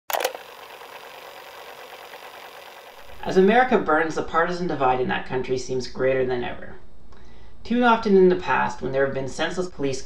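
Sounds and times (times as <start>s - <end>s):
tape machine clicks: 0.0s - 3.3s
tape running hiss and whir: 0.2s - 4.4s.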